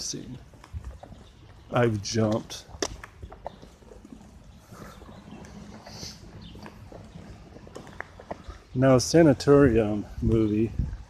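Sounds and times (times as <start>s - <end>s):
soft footsteps: 0.0s - 11.0s.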